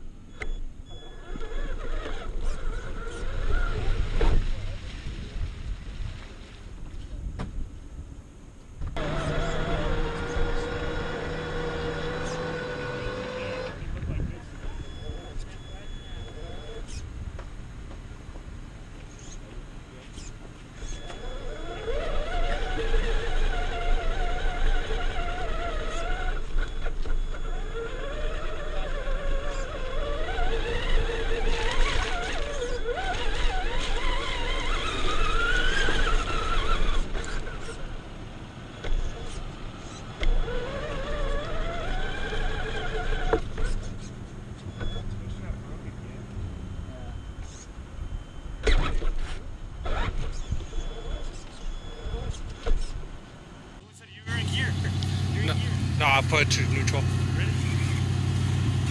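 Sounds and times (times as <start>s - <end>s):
electric motor whining: 0.0s - 4.8s, 9.0s - 17.0s, 20.1s - 38.0s, 38.8s - 53.2s.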